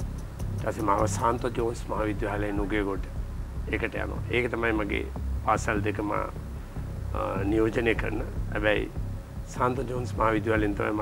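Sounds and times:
background music: 0:00.0 - 0:11.0
person speaking: 0:00.6 - 0:03.1, 0:03.7 - 0:06.4, 0:07.1 - 0:11.0.

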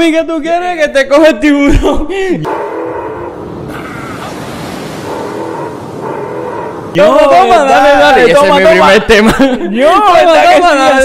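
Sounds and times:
ocean surf washing in: 0:02.5 - 0:08.8
faint steady tones: 0:02.5 - 0:09.0.

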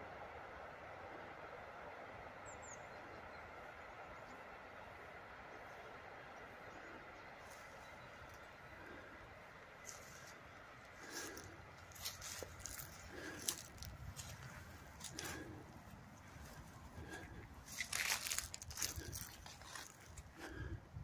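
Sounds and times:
leafy branches rustling and crackling: 0:09.6 - 0:20.7.

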